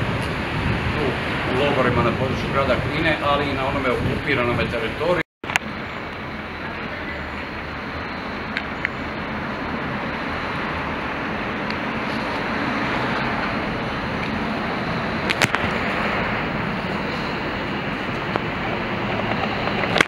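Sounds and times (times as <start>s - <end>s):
street noise hiss: 0.0s - 20.0s.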